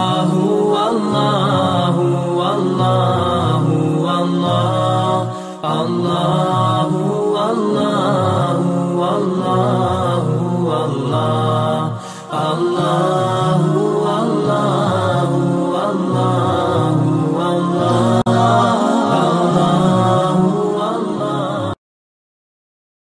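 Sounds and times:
melodic devotional chanting: 0.0 - 21.8.

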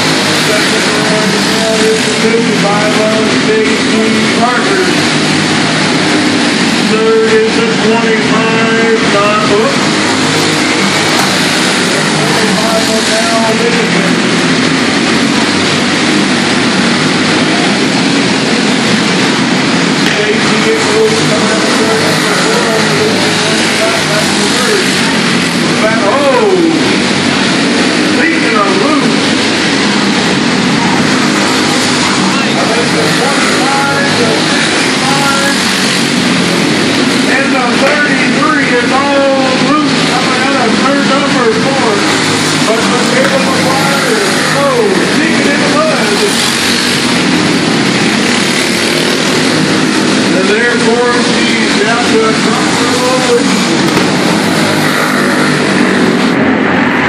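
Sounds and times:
race car engines revving: 0.0 - 57.0.

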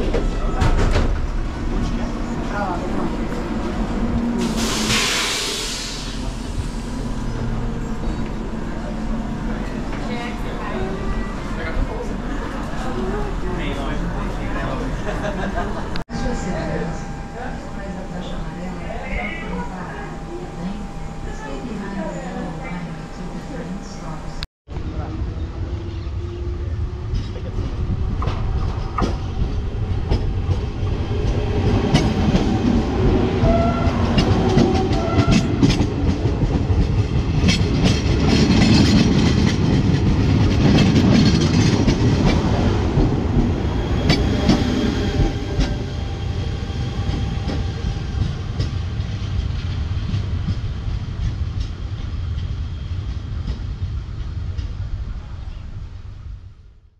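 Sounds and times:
electric train passing: 0.1 - 56.4.

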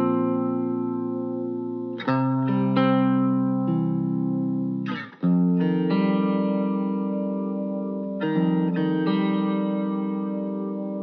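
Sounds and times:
guitar notes picked and ringing: 0.0 - 11.0.

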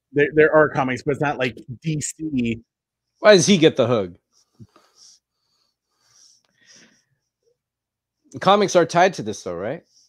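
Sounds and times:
man speaking: 0.0 - 4.2, 8.3 - 9.9.

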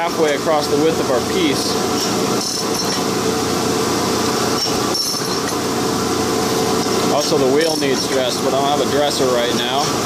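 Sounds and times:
surface grinder grinding steel: 1.8 - 3.2, 4.4 - 5.7, 6.8 - 8.7.

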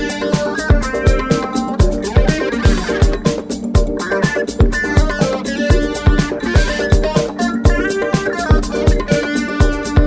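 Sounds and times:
house music: 0.0 - 10.0.

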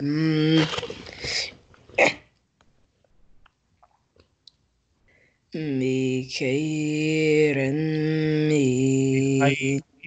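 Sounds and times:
man chanting recitation: 5.6 - 10.0.

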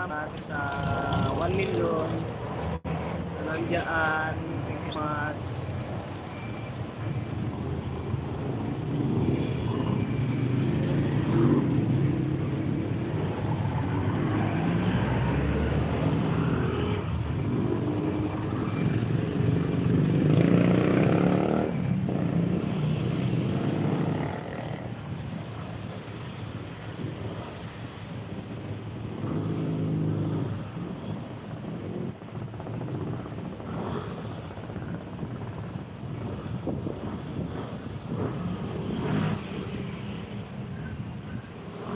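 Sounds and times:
vehicles passing close by: 0.0 - 41.9.

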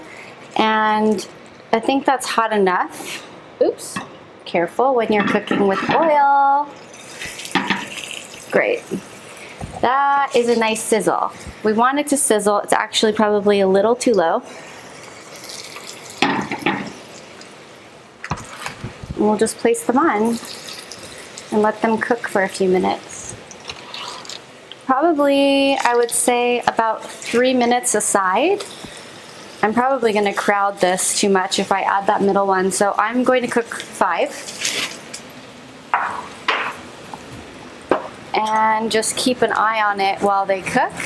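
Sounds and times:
kitchen utensils clattering: 5.1 - 6.2, 7.2 - 8.0
latkes sizzling in frying oil: 6.6 - 41.0.

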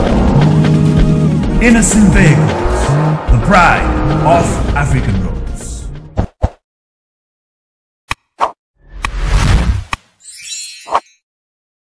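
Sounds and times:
rising whoosh with deep rumble: 0.0 - 5.2.

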